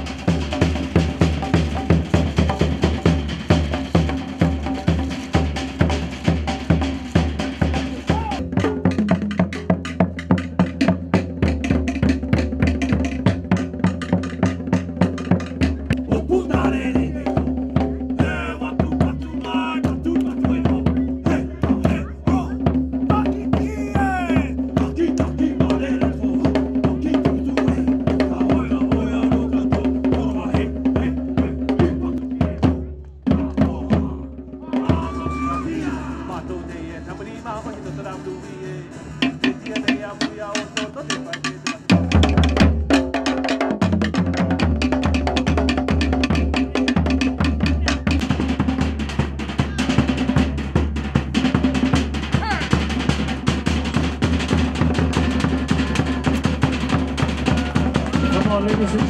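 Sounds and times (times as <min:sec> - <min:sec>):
fast drumming: 0:00.0 - 0:36.5, 0:39.2 - 0:59.0.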